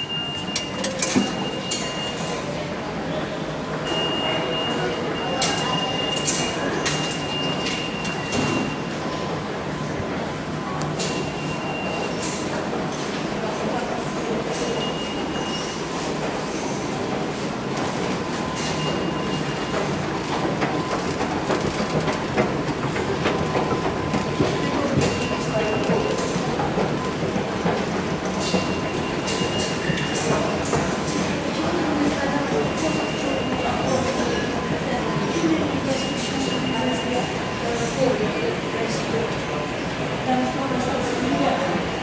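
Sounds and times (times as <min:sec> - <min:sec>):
rumble of trains echoing: 0:00.0 - 0:42.0.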